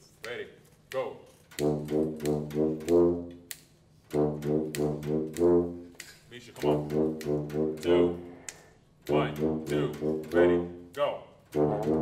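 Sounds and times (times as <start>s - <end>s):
brass ensemble playing: 1.6s - 12.0s.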